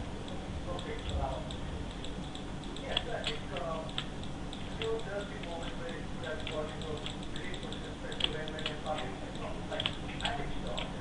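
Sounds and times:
steady low hum: 0.0s - 11.0s
computer mouse clicks: 0.2s - 11.0s.

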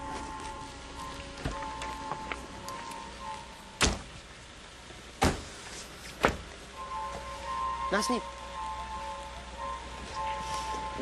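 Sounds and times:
quiet background music: 0.0s - 5.0s, 6.6s - 11.0s
car doors slamming shut: 3.8s - 4.2s, 5.2s - 5.6s, 6.2s - 6.5s.

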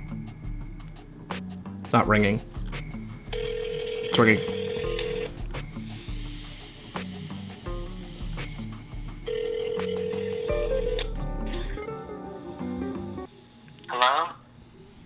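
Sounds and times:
background music with a beat: 0.0s - 13.3s
telephone ringback tone: 3.3s - 5.4s, 9.3s - 11.0s.

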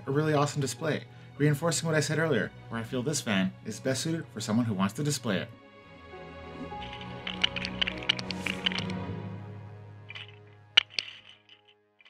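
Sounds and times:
music with held notes: 5.6s - 11.6s.

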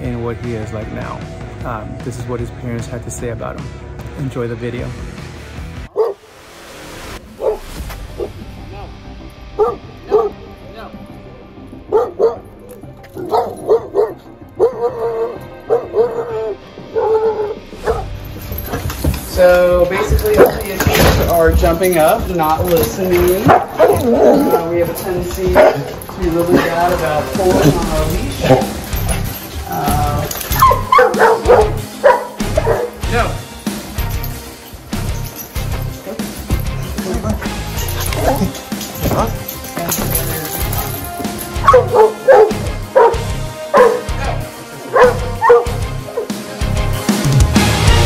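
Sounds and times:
background music: 0.0s - 48.0s
dog barking: 5.9s - 6.2s, 7.4s - 9.0s, 9.6s - 10.5s, 11.9s - 12.5s, 13.2s - 18.8s, 20.0s - 21.3s, 23.2s - 27.7s, 30.2s - 33.0s, 37.8s - 39.6s, 40.2s - 46.4s.

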